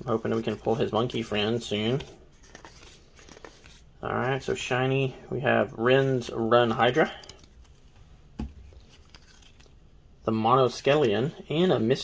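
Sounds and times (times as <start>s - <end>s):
cards rustling and clicking: 0.1s - 4.6s, 6.0s - 9.9s.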